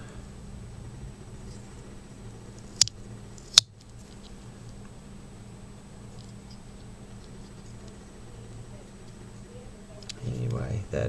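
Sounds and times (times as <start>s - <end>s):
light handling ticks: 6.1s - 9.2s.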